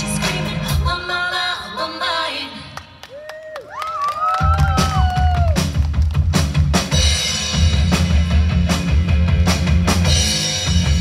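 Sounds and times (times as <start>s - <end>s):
live rock band: 4.4s - 11.0s.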